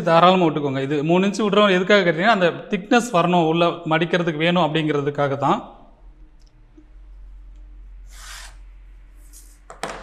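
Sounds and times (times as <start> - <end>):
chalk rasping on fabric: 8.0 - 9.7.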